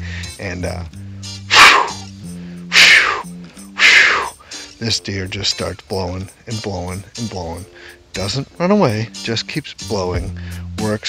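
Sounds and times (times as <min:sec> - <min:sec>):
background music: 0:00.0 - 0:11.0
man making sharp snorts: 0:01.5 - 0:02.1, 0:02.7 - 0:04.6.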